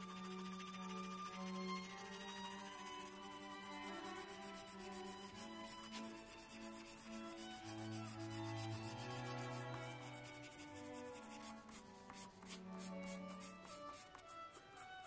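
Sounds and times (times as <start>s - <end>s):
pencil shading on paper: 0.0s - 15.0s
soft background music: 0.0s - 15.0s.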